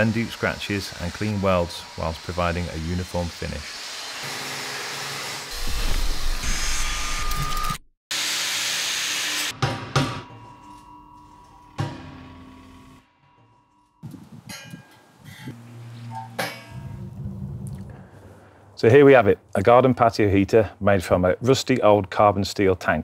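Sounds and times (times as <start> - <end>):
angle grinder on steel: 0.0 - 9.5.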